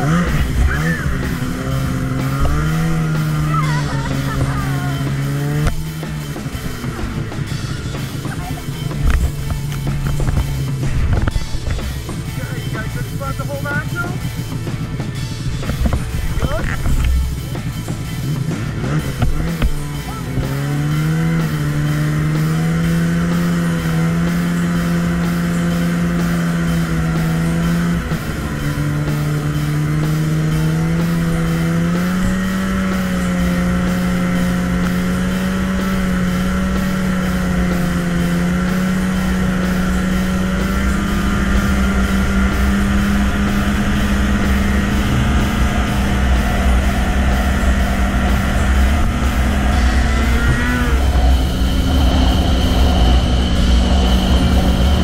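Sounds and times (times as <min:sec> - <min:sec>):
wind rumbling on microphone: 0:00.0 - 0:12.3, 0:14.8 - 0:19.8, 0:41.0 - 0:55.0
snowmobile engine running: 0:00.0 - 0:55.0.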